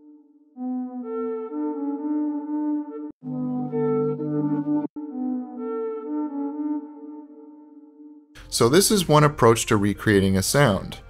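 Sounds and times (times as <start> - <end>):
synthesizer lead melody: 0.6 - 10.7.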